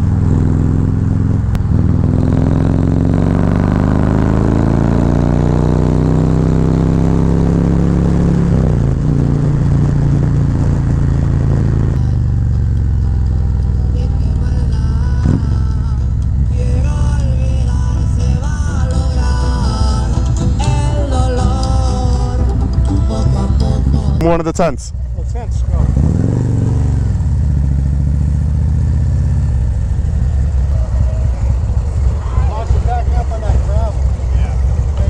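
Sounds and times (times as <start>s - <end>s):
motorcycle engine accelerating: 0.0s - 35.0s
music with singing: 13.6s - 24.2s.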